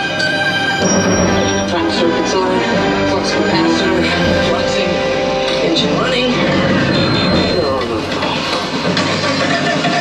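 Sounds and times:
music over outdoor loudspeakers: 0.0s - 10.0s
steady low rumble: 0.8s - 9.3s.

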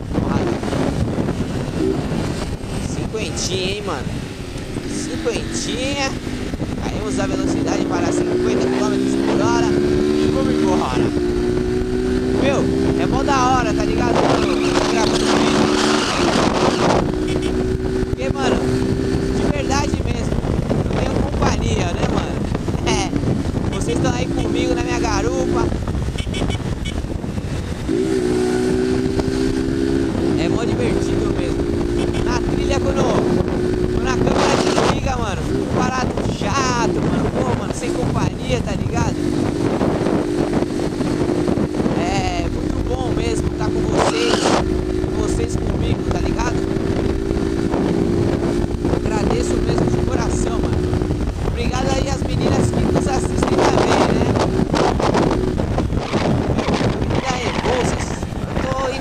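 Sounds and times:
motorcycle engine cruising: 0.0s - 59.0s
wind and road noise: 0.0s - 59.0s.

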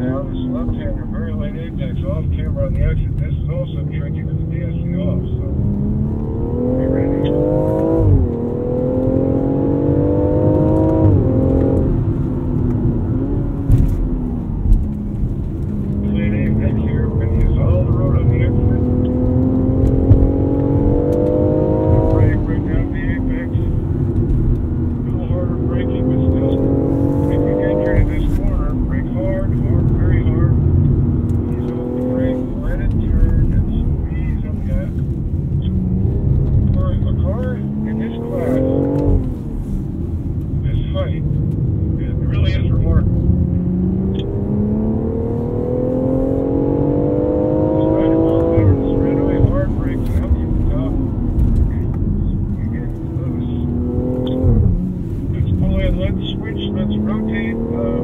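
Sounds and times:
car engine accelerating through gears: 0.0s - 58.0s.

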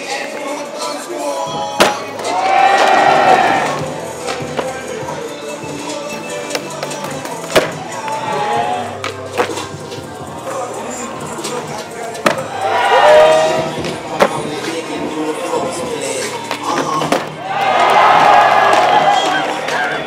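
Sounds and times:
music: 0.0s - 20.0s
skateboard clacking on landing: 1.5s - 5.2s, 6.5s - 8.2s, 9.0s - 9.9s, 11.3s - 12.6s, 13.5s - 17.4s.

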